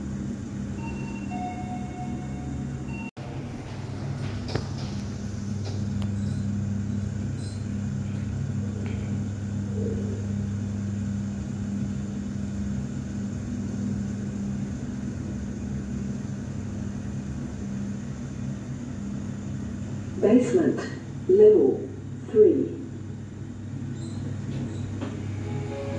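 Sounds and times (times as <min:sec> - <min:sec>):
lift low hum: 0:24.3 - 0:25.9.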